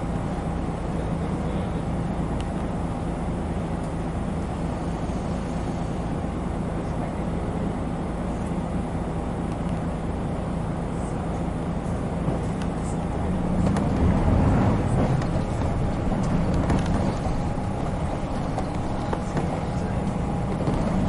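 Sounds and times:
bus diesel engine idling: 0:00.0 - 0:21.0.

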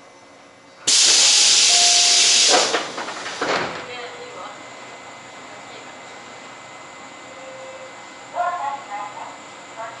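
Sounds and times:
compressed air hissing: 0:00.9 - 0:02.9.

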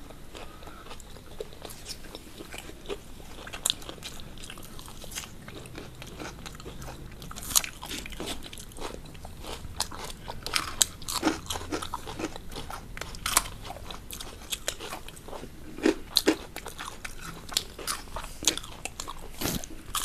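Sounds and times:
crunching and chewing fried food: 0:00.0 - 0:20.0.

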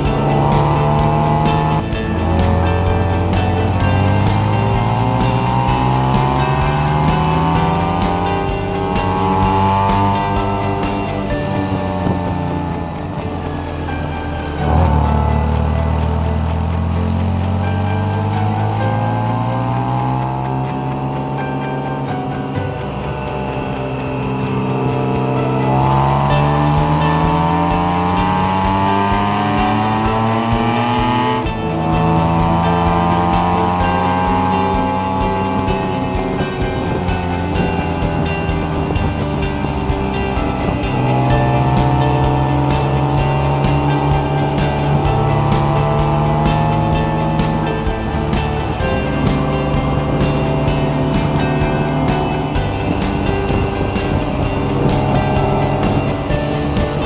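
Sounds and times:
motorcycle engine accelerating: 0:00.0 - 0:57.0.

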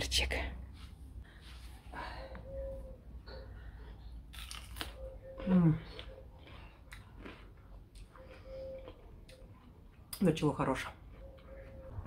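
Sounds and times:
chewing with faint crunching: 0:02.2 - 0:12.0.

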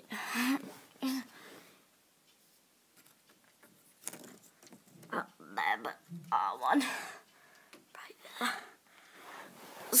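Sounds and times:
child whispering: 0:07.9 - 0:08.8.

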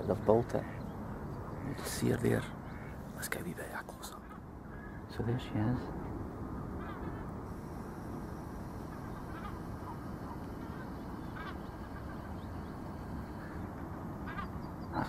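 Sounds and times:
low outdoor background noise: 0:00.0 - 0:15.0
faint short bird calls: 0:00.6 - 0:05.2, 0:06.0 - 0:15.0.

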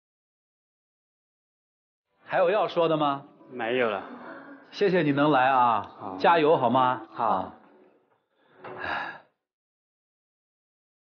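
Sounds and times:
person exhaling: 0:08.4 - 0:09.4.

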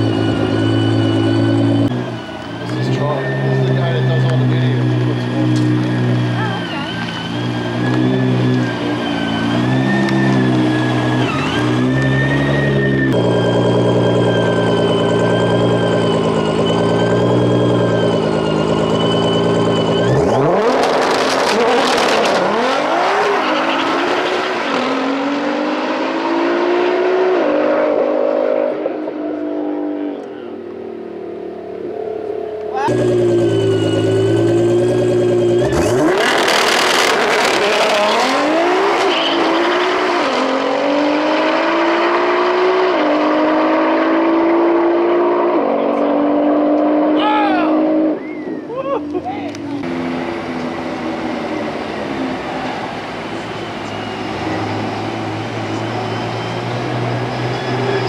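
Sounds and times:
race car accelerating hard: 0:00.0 - 0:58.0
race car engine idling: 0:32.3 - 0:35.8.

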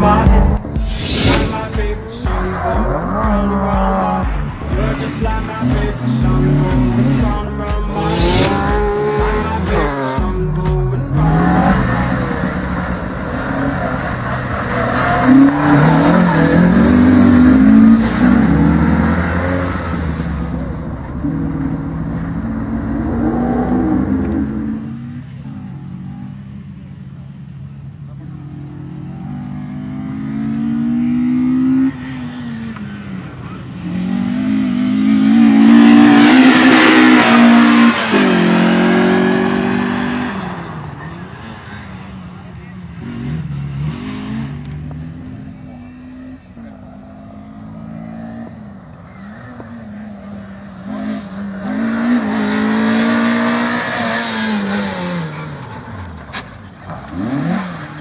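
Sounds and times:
car engine revving hard: 0:00.0 - 0:10.3, 0:11.1 - 0:25.2, 0:28.2 - 0:32.8, 0:33.7 - 0:41.9, 0:43.0 - 0:56.2, 0:56.9 - 0:58.0.

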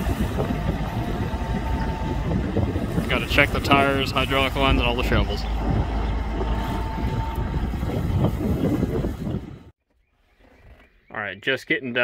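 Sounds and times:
tractor diesel engine running: 0:00.0 - 0:09.7.

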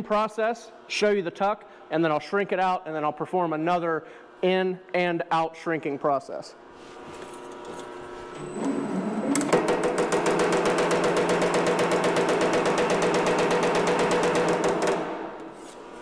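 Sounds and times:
machine spinning up: 0:07.5 - 0:15.2
power hammer striking metal: 0:09.6 - 0:15.5.

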